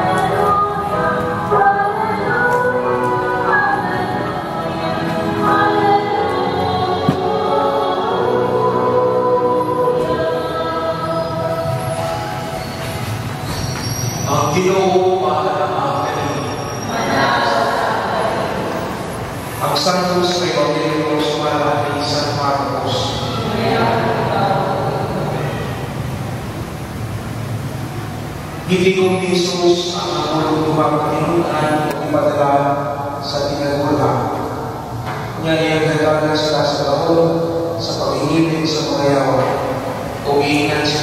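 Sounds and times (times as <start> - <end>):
group singing a hymn: 0.0 - 13.0, 14.6 - 26.3.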